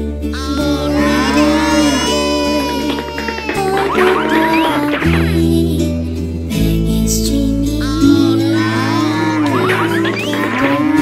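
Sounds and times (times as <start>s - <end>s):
background music: 0.0s - 11.0s
cartoon ox mooing: 0.5s - 4.8s, 8.5s - 11.0s.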